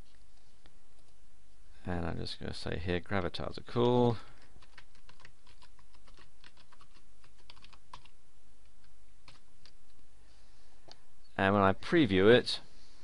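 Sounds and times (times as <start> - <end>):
typing on computer keyboard: 4.4 - 8.1.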